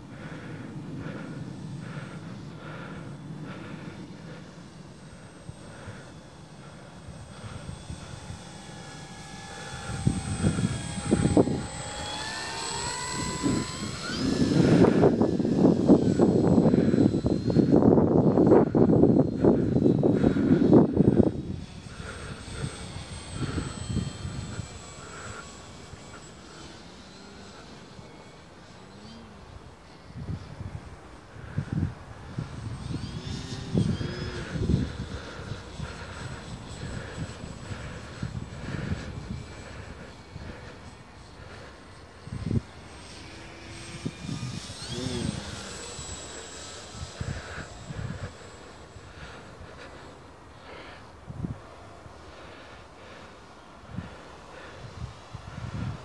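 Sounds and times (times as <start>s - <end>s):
model plane motor whine: 0.0s - 56.0s
wind buffeting microphone: 5.4s - 26.0s, 30.0s - 50.1s, 53.8s - 56.0s.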